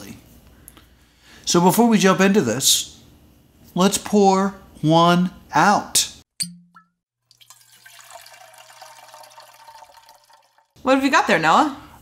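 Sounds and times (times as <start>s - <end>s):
drink pouring: 7.2s - 10.8s.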